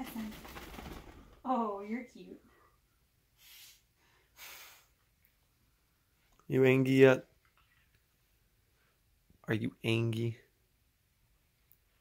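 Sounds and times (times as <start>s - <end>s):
fabric rustling: 0.0s - 1.4s.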